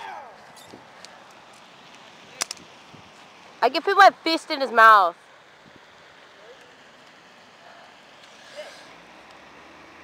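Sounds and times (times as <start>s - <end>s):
distant voices: 0.0s - 10.0s
outdoor background noise: 0.0s - 10.0s.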